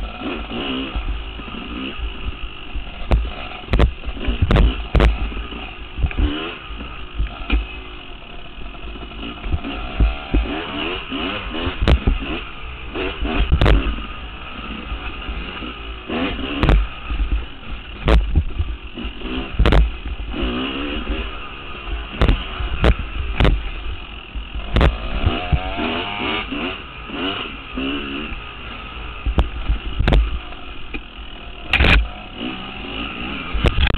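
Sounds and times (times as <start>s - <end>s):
dirt bike engine revving: 0.0s - 33.9s.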